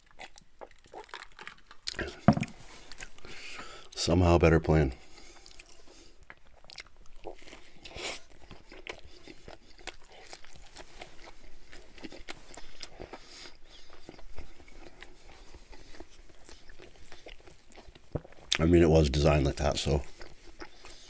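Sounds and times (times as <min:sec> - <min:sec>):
chewing with crunches: 0:00.0 - 0:04.0, 0:05.0 - 0:21.0.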